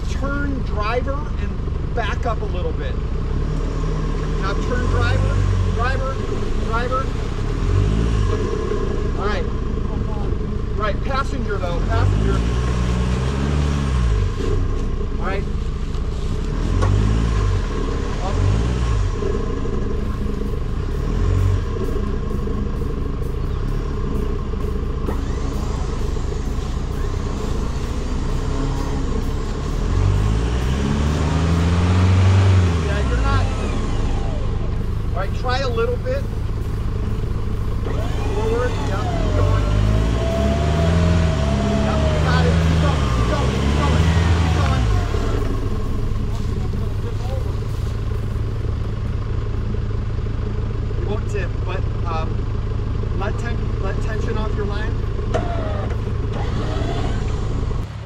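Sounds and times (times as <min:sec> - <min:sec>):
truck engine idling: 0:00.0 - 0:58.0
truck engine revving: 0:00.0 - 0:58.0.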